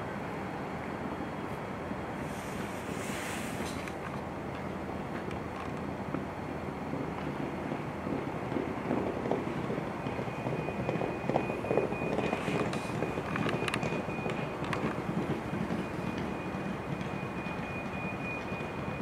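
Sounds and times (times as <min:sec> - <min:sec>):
wind noise on microphone: 0:05.2 - 0:19.0
horse hoofbeats on turf: 0:06.9 - 0:19.0.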